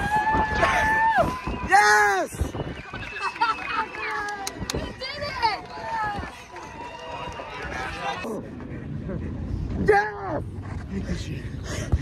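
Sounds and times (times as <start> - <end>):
people whooping and cheering: 0.0 - 8.4
vehicle low rumble: 2.6 - 12.0.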